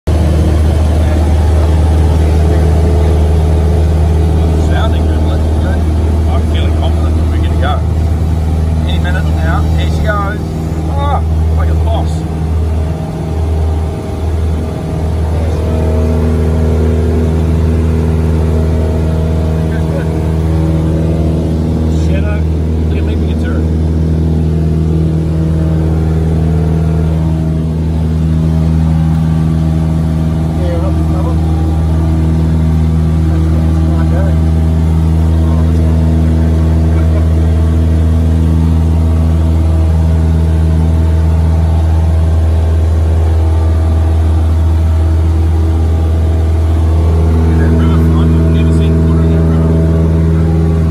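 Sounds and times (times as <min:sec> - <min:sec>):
light aircraft engine drone: 0:00.1 - 0:50.9.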